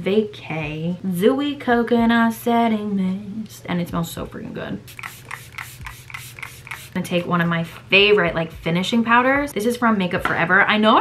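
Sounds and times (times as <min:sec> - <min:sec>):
spray bottle hissing: 0:04.9 - 0:07.3.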